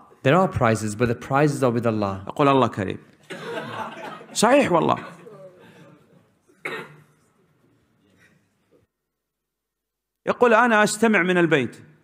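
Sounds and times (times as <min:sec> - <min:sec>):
person coughing: 0:06.5 - 0:07.3.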